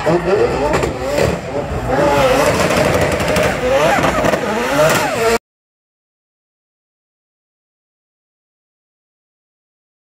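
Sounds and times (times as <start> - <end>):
rotary engine revving hard: 0.0 - 5.4.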